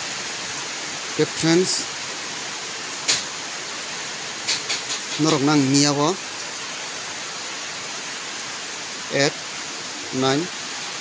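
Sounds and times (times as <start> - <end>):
steady background hiss: 0.0 - 11.0
person speaking: 1.2 - 1.9, 5.1 - 6.2, 9.1 - 9.4, 10.1 - 10.6.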